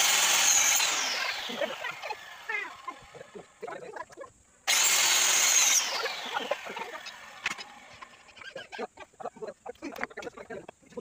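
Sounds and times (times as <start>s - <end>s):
electric circular saw whining: 0.0s - 3.7s, 4.7s - 8.4s.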